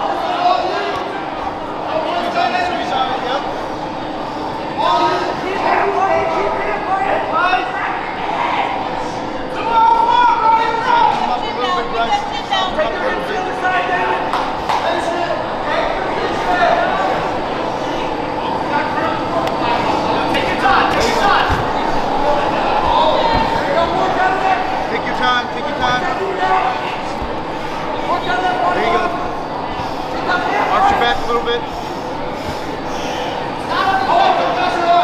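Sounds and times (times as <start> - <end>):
crowd shouting and talking: 0.0 - 35.0.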